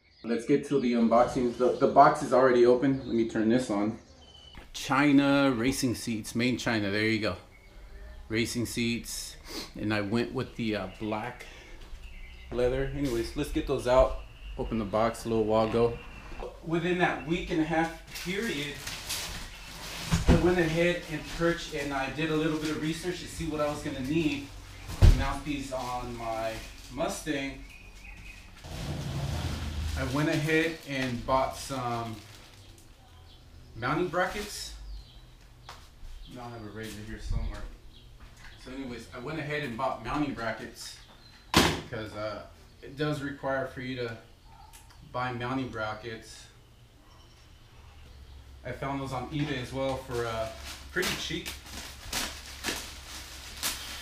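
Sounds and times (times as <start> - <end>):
plastic bag rustling and crinkling: 17.8 - 33.1, 49.5 - 54.0.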